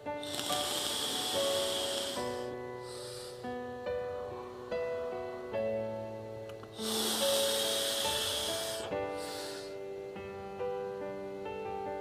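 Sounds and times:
soft piano music: 0.0s - 12.0s
vape draw hiss: 0.2s - 3.5s, 6.7s - 9.8s.

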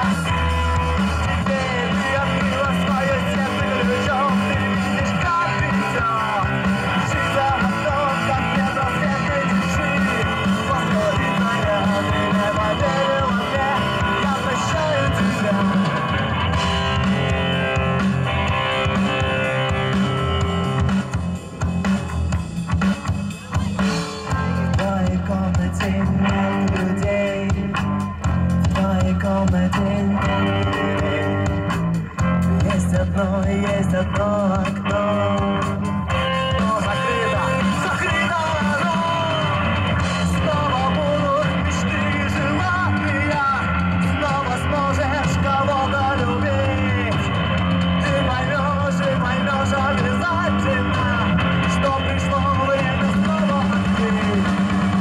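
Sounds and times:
bass guitar: 0.0s - 55.0s
drum kit: 0.0s - 55.0s
electric guitar: 0.0s - 55.0s
lead singer: 0.0s - 55.0s.

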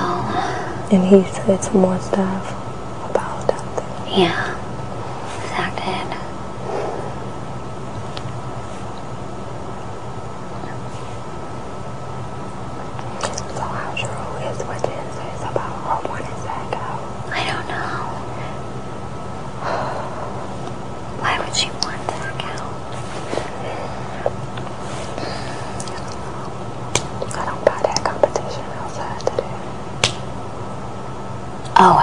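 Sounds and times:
women whispering: 0.0s - 4.6s, 5.3s - 6.3s, 13.1s - 18.4s, 21.2s - 22.8s, 27.2s - 29.7s
steady low hum: 0.0s - 32.0s.

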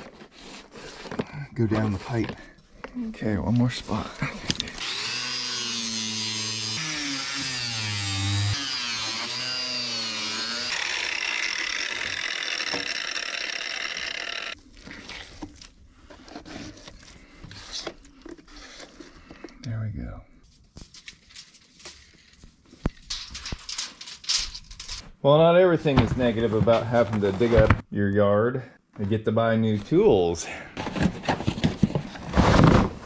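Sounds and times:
handling knocks and scrapes: 0.0s - 2.6s, 25.8s - 27.8s, 30.8s - 33.0s
electric jigsaw cutting pipe: 4.7s - 14.6s.

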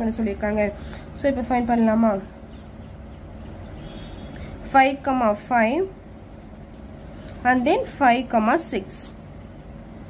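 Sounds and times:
woman speaking: 0.0s - 2.4s, 4.6s - 6.0s, 7.4s - 9.2s
low background noise: 0.0s - 10.0s.

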